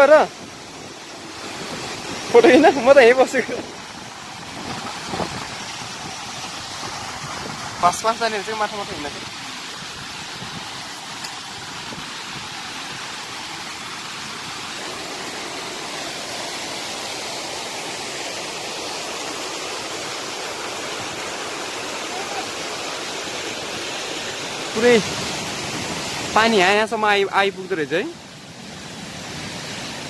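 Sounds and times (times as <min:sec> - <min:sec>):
waterfall rushing: 0:00.0 - 0:30.0
person's voice: 0:02.3 - 0:03.6.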